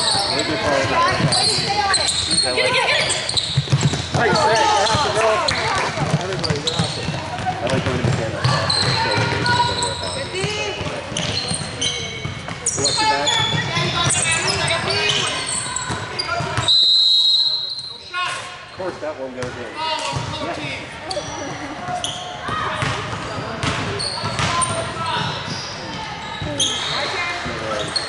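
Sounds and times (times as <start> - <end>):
voices in echoing gym: 0.0 - 28.0
basketball bouncing: 3.3 - 16.6, 21.9 - 25.3
referee's whistle blast: 16.6 - 18.1.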